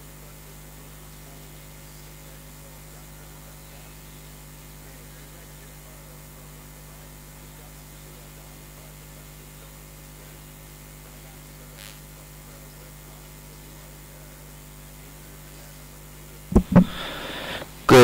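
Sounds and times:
electrical hum: 0:15.0 - 0:18.0.

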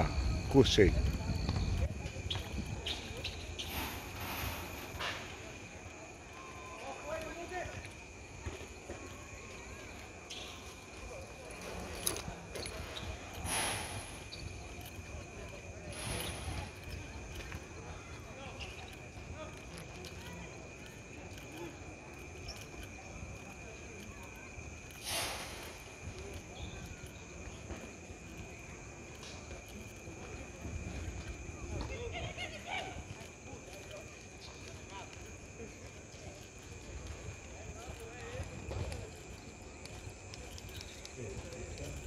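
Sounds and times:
faint distant voices: 0:00.0 - 0:42.0.

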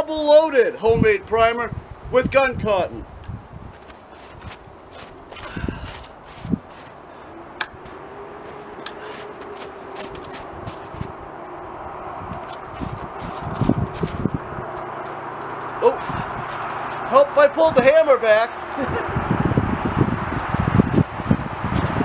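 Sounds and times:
steady rushing outdoor noise: 0:00.0 - 0:22.0
footsteps crunching in snow: 0:03.5 - 0:11.2, 0:12.3 - 0:17.4, 0:20.3 - 0:22.0.

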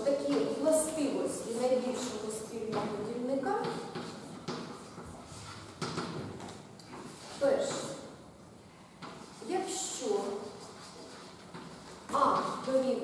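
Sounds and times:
woman speaking: 0:00.0 - 0:03.9, 0:07.4 - 0:08.1, 0:09.4 - 0:10.6, 0:12.1 - 0:13.0
chalk tapping and scratching: 0:00.2 - 0:08.0, 0:09.0 - 0:13.0.

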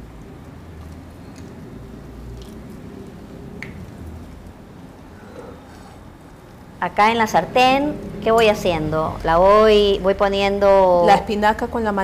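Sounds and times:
dough squishing by hand: 0:00.0 - 0:06.9.

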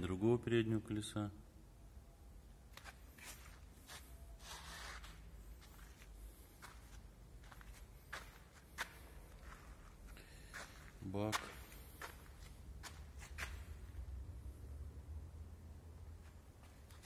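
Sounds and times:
faint footsteps: 0:02.7 - 0:14.0, 0:16.1 - 0:17.0
low steady rumble: 0:12.0 - 0:17.0.

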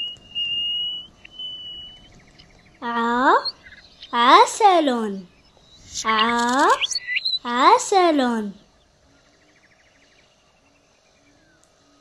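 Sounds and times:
nightingale singing: 0:00.0 - 0:10.4.

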